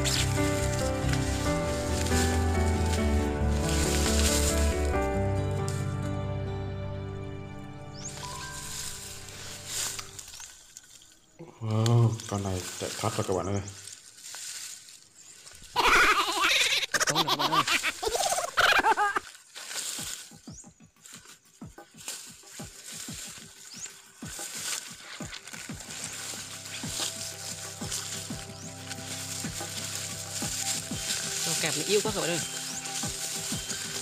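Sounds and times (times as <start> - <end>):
footsteps in dry leaves: 0.0 - 6.2, 7.6 - 34.0
background music: 0.0 - 10.5, 21.8 - 34.0.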